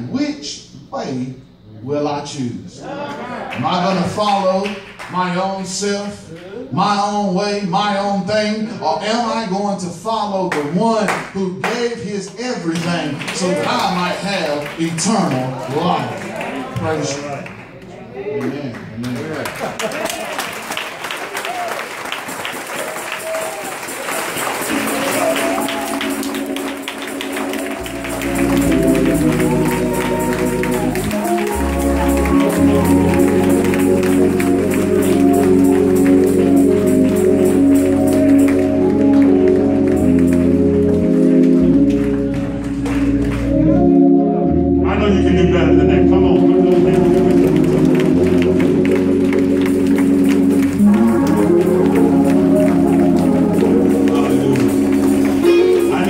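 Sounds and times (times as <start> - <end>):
congregation clapping rhythmically: 3.5 - 6.5, 10.5 - 44.2, 46.3 - 56.0
held organ-like chords: 22.9 - 56.0
bass: 24.6 - 56.0.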